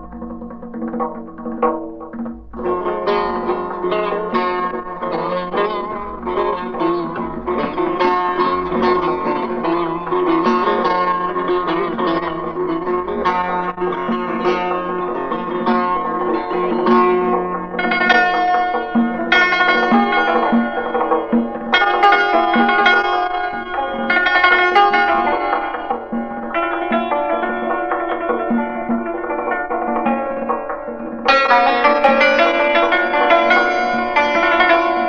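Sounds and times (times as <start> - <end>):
plucked lute playing quick notes: 0.0 - 35.0.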